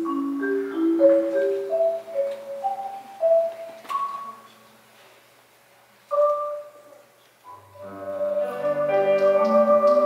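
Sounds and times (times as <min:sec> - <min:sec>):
marimba notes ringing: 0:00.0 - 0:04.5, 0:06.1 - 0:10.0.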